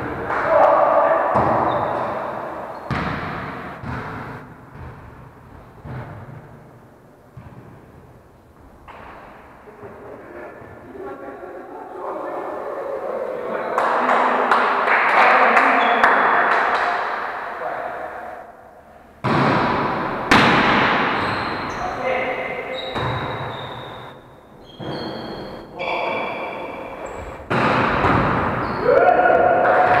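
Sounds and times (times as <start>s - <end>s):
players' voices and calls: 0.0s - 4.5s, 9.6s - 30.0s
volleyball struck and thudding: 1.3s - 2.2s, 2.9s - 5.2s, 19.2s - 21.6s, 27.5s - 28.6s
sneakers squeaking on wooden floor: 1.3s - 4.9s, 21.0s - 28.9s.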